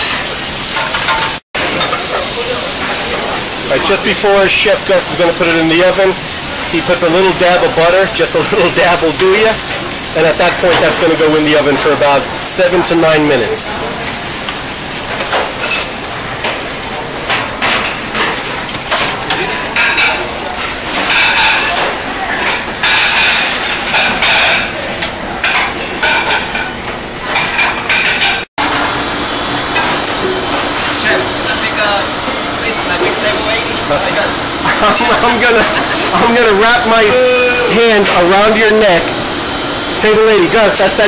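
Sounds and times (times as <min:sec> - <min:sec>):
clatter of pans and utensils: 0:00.0 - 0:28.9, 0:29.6 - 0:37.2, 0:37.9 - 0:39.1
food sizzling: 0:00.0 - 0:41.0
indistinct voices: 0:29.8 - 0:39.2.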